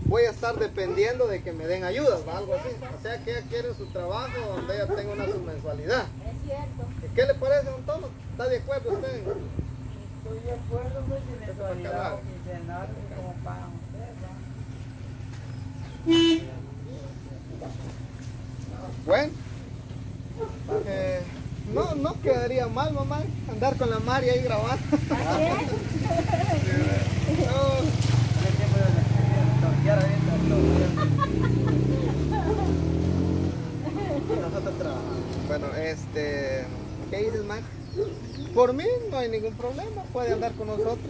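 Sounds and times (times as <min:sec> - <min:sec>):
vehicle engine humming: 0:00.0 - 0:41.0
vehicle horn toot: 0:16.0 - 0:16.6.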